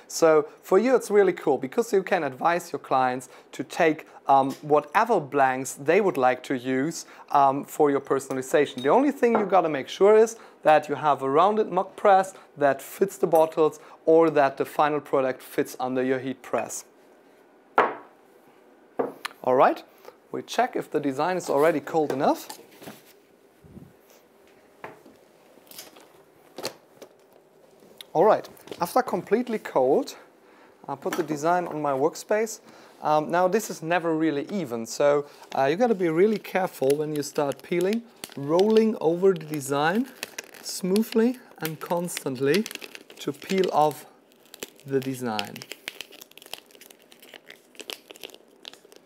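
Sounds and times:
film peeling with faint crackles: 0:25.5 - 0:29.5, 0:35.4 - 0:49.0.

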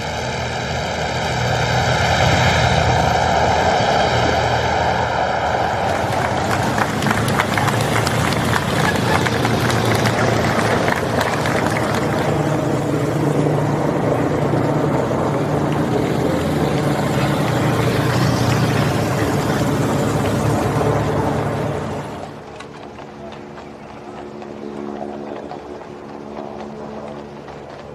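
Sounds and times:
motorcycle and car engines passing: 0:00.0 - 0:27.9
crowd crackling noise: 0:05.4 - 0:27.9.

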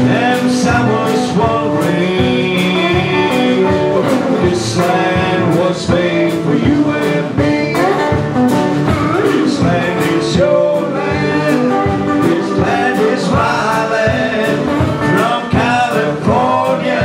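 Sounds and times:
acoustic guitar: 0:00.0 - 0:17.0
drum kit steady beat: 0:00.0 - 0:17.0
man singing: 0:00.0 - 0:17.0.

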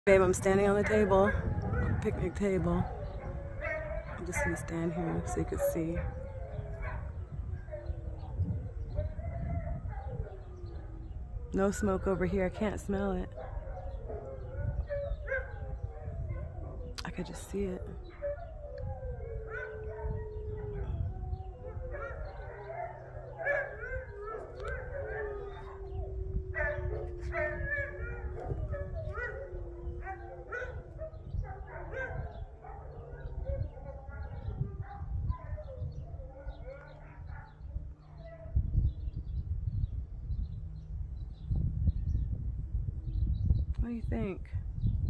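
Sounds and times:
dogs howling: 0:00.3 - 0:39.0
low rumble: 0:17.8 - 0:36.7
dogs yipping: 0:18.1 - 0:38.6.

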